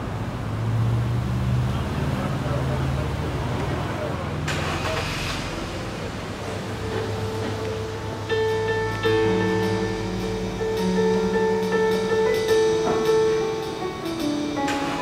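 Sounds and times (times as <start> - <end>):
vehicle engine humming: 0.0 - 15.0.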